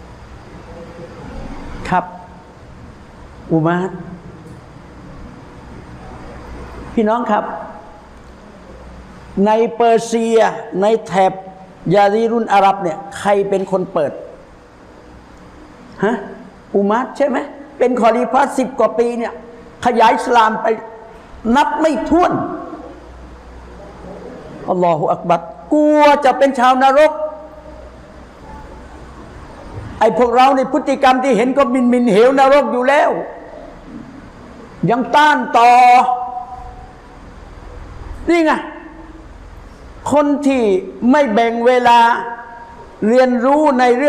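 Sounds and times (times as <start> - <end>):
faint low hum: 0.0 - 44.0
man speaking: 9.4 - 14.4, 16.0 - 23.0, 24.6 - 27.7, 30.0 - 33.6, 34.8 - 36.7, 38.3 - 39.1, 40.1 - 44.0.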